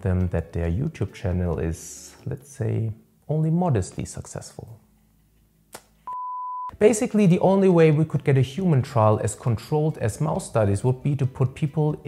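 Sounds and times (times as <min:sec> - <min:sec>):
short electronic beep: 0:06.1 - 0:06.7.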